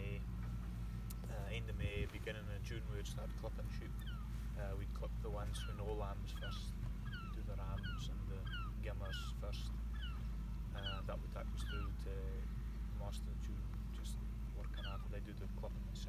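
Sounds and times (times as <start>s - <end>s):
man talking: 0.0s - 0.3s, 1.1s - 9.8s, 10.7s - 16.0s
small birds chirping: 0.0s - 16.0s
steady low rumble: 0.0s - 16.0s.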